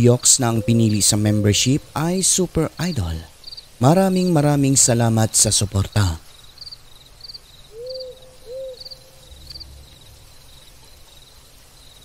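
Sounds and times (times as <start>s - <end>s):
crickets chirping: 0.0s - 12.0s
owl hooting: 0.3s - 2.0s, 7.7s - 9.3s.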